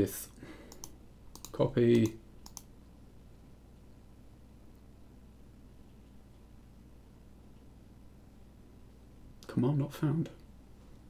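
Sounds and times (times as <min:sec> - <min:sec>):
computer mouse clicks: 0:00.7 - 0:02.7
person speaking: 0:01.4 - 0:02.3, 0:09.4 - 0:10.5.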